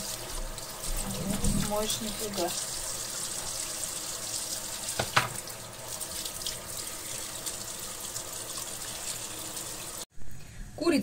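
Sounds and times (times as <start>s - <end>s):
tap water running into sink: 0.0s - 10.0s.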